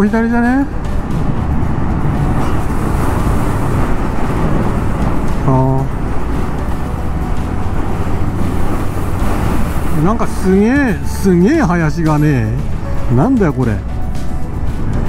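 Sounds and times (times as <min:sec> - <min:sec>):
road noise: 0:00.0 - 0:15.0
motorcycle engine: 0:00.7 - 0:11.1
wind noise on microphone: 0:00.7 - 0:11.6.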